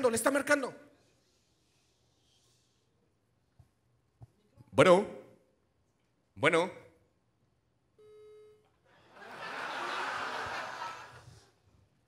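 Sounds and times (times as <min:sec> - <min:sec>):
telephone line beep: 0:08.0 - 0:08.6.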